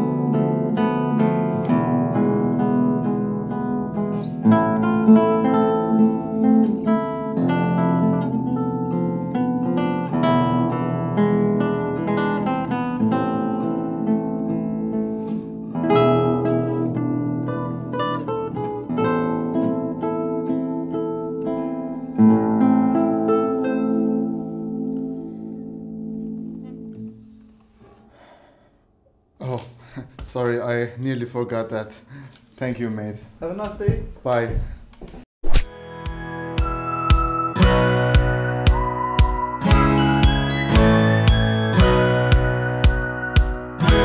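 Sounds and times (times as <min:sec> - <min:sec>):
fingerpicked guitar with deep bass: 0:00.0 - 0:27.2, 0:37.1 - 0:44.0
plucked bass strings: 0:36.1 - 0:44.0.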